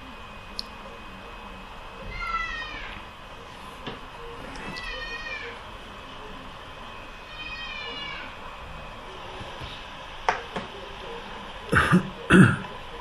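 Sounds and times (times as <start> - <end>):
man coughing: 11.7 - 12.7.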